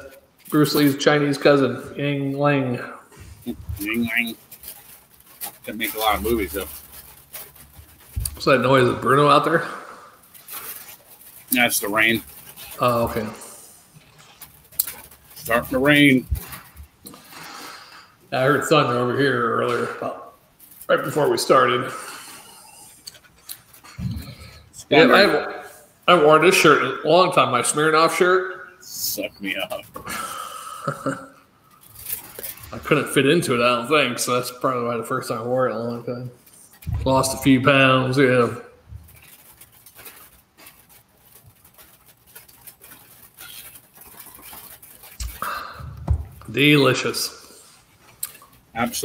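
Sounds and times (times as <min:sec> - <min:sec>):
dull thump: 0:45.8 - 0:46.5.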